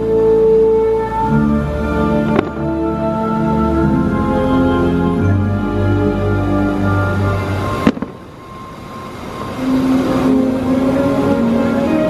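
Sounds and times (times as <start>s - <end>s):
fireworks show music: 0.0s - 12.0s
firework bang: 2.3s - 2.6s, 7.8s - 8.3s
small firework cracks: 7.8s - 8.2s.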